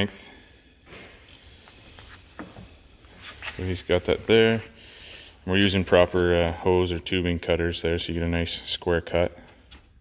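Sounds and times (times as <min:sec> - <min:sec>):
rubber hose handling noises: 0:00.8 - 0:07.0.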